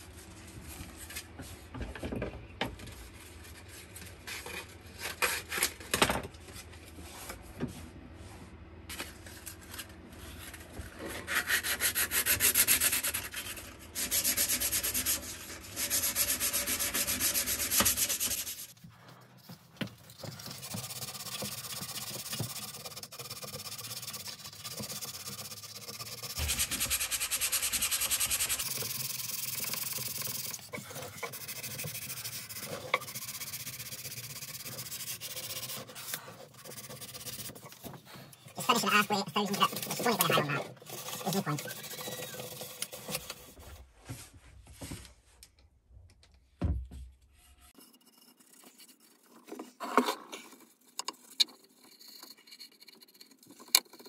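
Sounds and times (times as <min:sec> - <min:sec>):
sanding wood by hand: 0:11.3 - 0:18.8, 0:20.2 - 0:37.9, 0:38.5 - 0:43.6.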